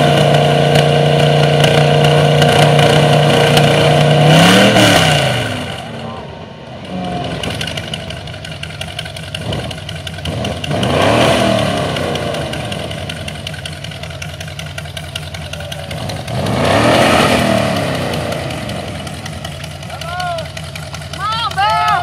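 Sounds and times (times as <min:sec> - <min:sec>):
engine revving: 0:00.0 - 0:22.0.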